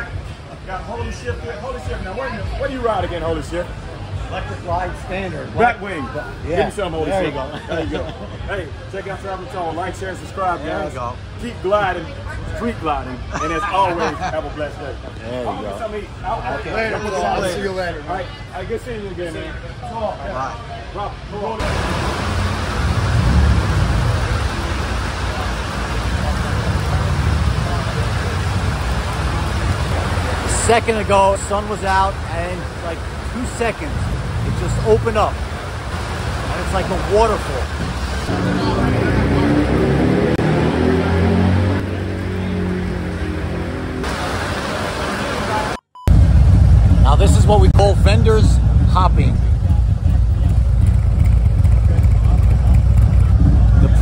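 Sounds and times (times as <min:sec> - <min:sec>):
heavy rain on asphalt: 0:21.6 - 0:39.6, 0:44.0 - 0:45.8
motorcycle engine rumbling: 0:21.6 - 0:54.0.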